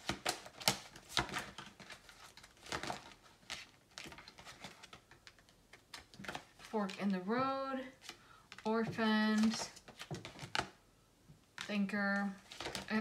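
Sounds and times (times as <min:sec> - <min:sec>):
cards being shuffled: 0:00.0 - 0:07.1, 0:07.8 - 0:10.8, 0:11.5 - 0:13.0.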